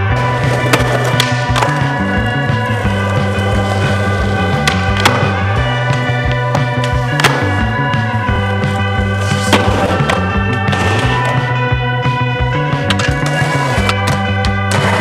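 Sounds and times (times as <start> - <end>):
psychedelic rock music: 0.0 - 15.0
skateboard wheels rolling on concrete: 0.0 - 15.0
skateboard clacking on ground: 12.8 - 14.6.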